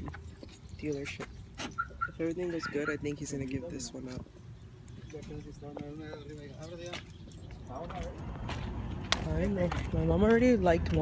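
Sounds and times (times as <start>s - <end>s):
voices: 0.0s - 11.0s.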